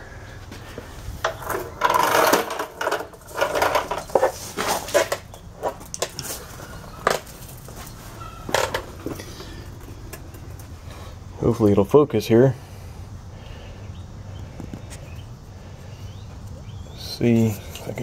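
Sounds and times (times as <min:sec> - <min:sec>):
scuffing and rustling: 0:03.5 - 0:09.6.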